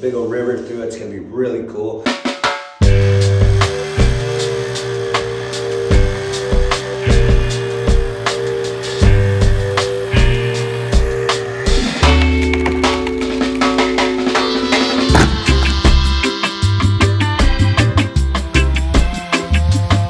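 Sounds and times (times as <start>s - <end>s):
drum kit beat: 2.0s - 20.0s
deep bass line: 2.8s - 20.0s
held chord: 2.8s - 20.0s.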